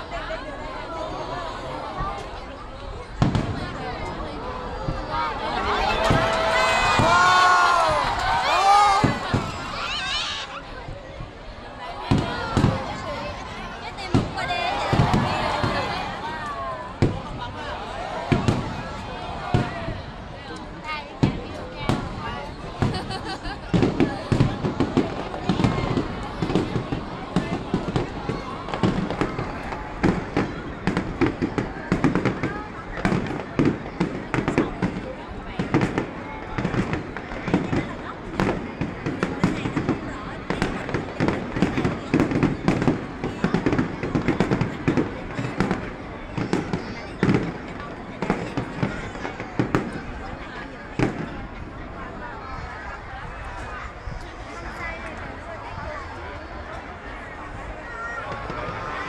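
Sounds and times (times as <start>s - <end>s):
fireworks bangs and crackles: 0.0s - 59.0s.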